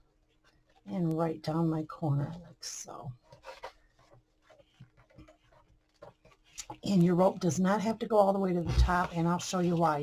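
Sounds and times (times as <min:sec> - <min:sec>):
fingers rustling rope on cardboard: 0:03.1 - 0:06.9.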